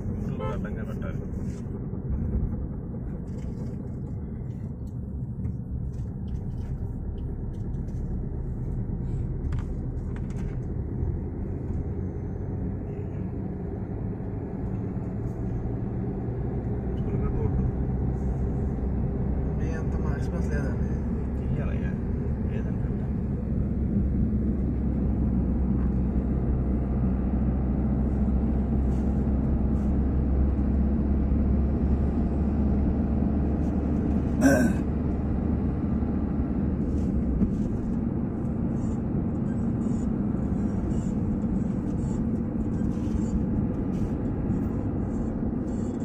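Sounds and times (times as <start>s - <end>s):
car engine and road noise: 0.0s - 46.0s.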